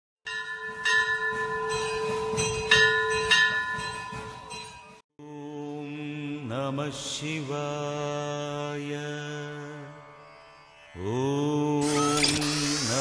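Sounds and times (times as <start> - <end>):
bell ringing: 0.3 - 5.0.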